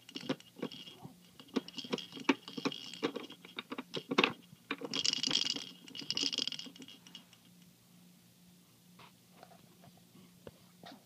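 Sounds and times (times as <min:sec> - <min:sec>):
plastic toy rattling and clicking: 0:00.0 - 0:07.5.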